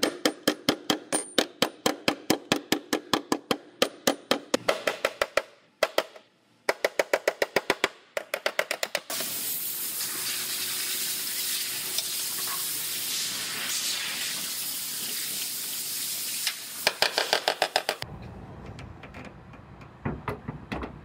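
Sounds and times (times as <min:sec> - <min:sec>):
steady hiss: 0:09.1 - 0:17.0.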